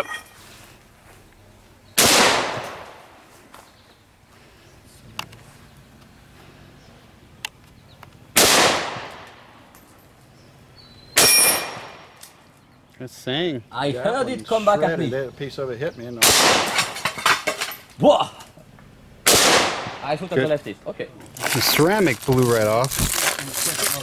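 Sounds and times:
rifle shots ringing out: 0:02.0 - 0:03.2, 0:08.4 - 0:09.5, 0:11.2 - 0:12.2, 0:16.2 - 0:17.0, 0:19.2 - 0:20.0.

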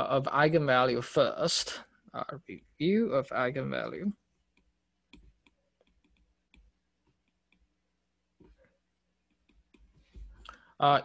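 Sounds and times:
stylus tapping on glass screen: 0:04.5 - 0:07.7.

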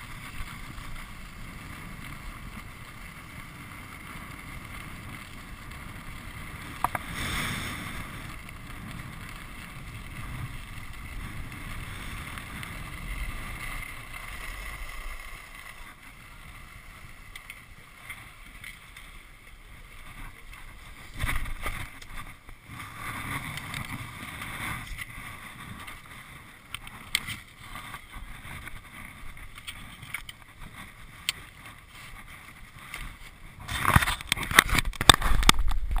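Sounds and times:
skis sliding over snow: 0:00.0 - 0:36.0
wind rushing over camera: 0:00.0 - 0:36.0.

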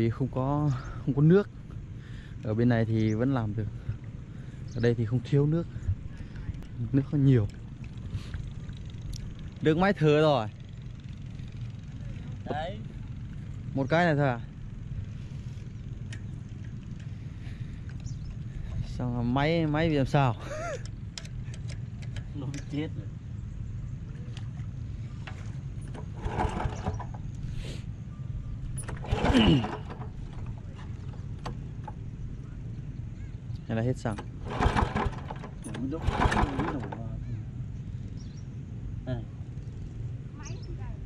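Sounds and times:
small engine idling: 0:00.2 - 0:40.7
engine recoil rope pulls: 0:24.9 - 0:27.9, 0:28.6 - 0:32.1, 0:34.0 - 0:37.2.

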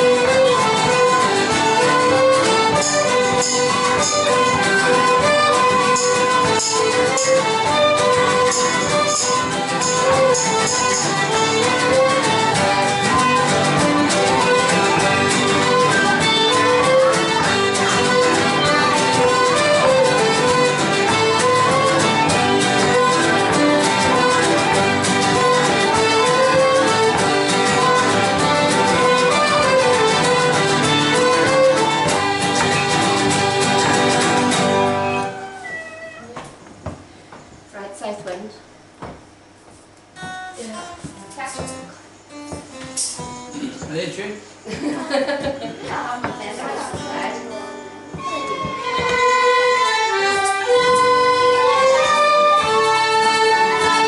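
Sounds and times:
banjo: 0:00.0 - 0:35.3, 0:45.7 - 0:54.0
piano accordion: 0:00.0 - 0:35.5, 0:46.6 - 0:54.0
fiddles playing a tune: 0:00.0 - 0:36.2, 0:45.8 - 0:54.0
guitar: 0:00.0 - 0:54.0
sharp knocks: 0:39.0 - 0:39.3, 0:42.5 - 0:44.1, 0:48.1 - 0:49.5.

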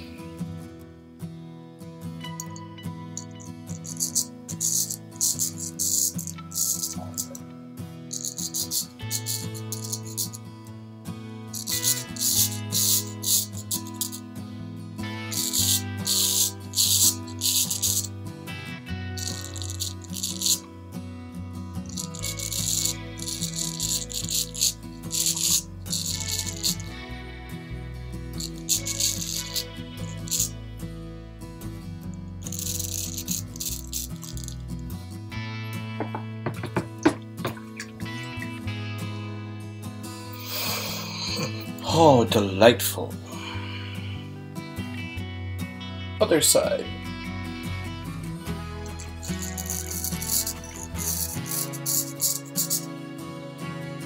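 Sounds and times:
background music: 0:00.0 - 0:54.0
razor scraping stubble: 0:03.2 - 0:07.5, 0:08.1 - 0:10.5, 0:11.6 - 0:14.3, 0:15.3 - 0:18.2, 0:19.2 - 0:20.7, 0:21.8 - 0:27.0, 0:28.3 - 0:30.6, 0:32.4 - 0:34.8, 0:40.3 - 0:41.8, 0:48.7 - 0:52.9.

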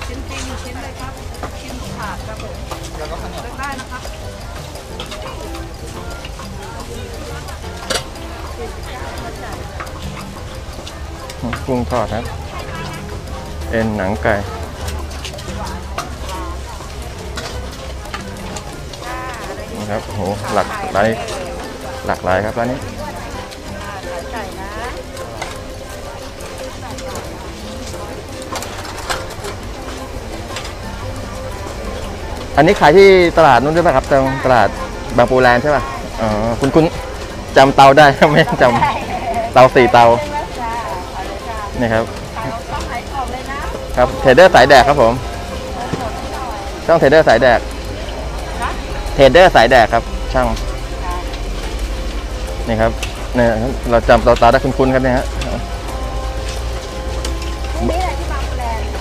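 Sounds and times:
food sizzling in hot oil: 0:00.0 - 0:59.0
metal utensils clicking: 0:00.0 - 0:59.0.

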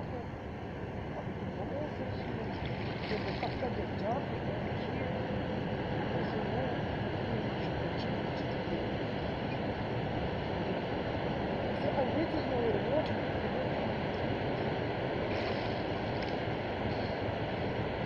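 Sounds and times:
faint distant voices: 0:00.0 - 0:14.6.

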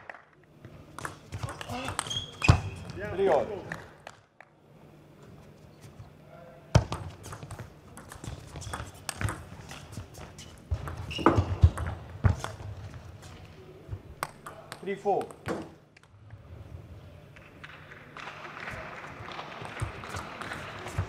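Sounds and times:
person speaking: 0:01.4 - 0:02.1.

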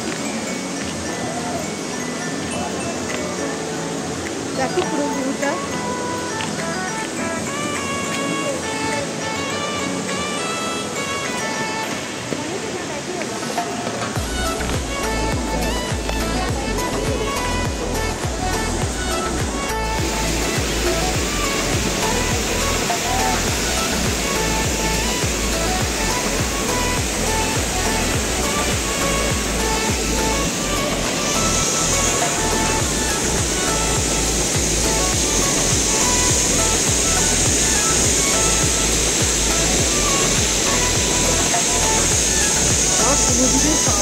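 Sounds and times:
background music: 0:00.0 - 0:44.0
waterfall rushing: 0:00.0 - 0:44.0.

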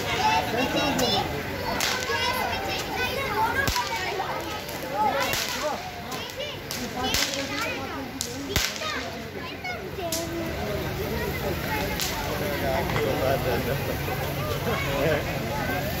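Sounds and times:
children chattering and shouting: 0:00.0 - 0:16.0
fireworks cracking: 0:00.0 - 0:16.0.

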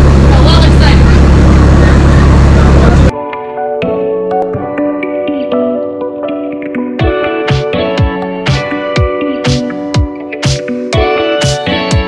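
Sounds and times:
boat engine droning: 0:00.0 - 0:03.1.

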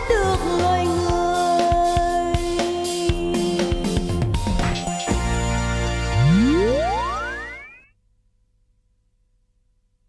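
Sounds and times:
sound effect gliding upward: 0:06.2 - 0:07.8.

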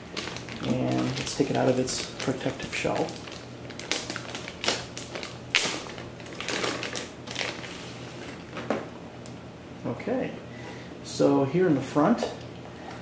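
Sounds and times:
plastic bag rustling and crinkling: 0:00.0 - 0:08.7.

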